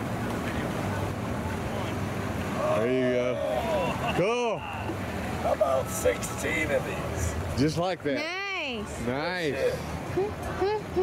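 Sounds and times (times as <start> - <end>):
outboard motors running slowly: 0.0 - 11.0
voices calling out: 0.0 - 11.0
wind and water noise: 0.0 - 11.0.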